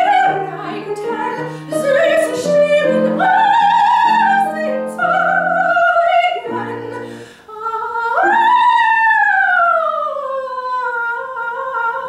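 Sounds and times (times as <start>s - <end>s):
piano chords: 0.0s - 7.4s
soprano singing: 0.0s - 12.0s.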